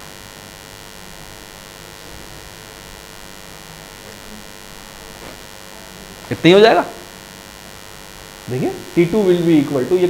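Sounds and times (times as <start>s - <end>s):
background hiss: 0.0s - 10.0s
electrical hum: 0.0s - 10.0s.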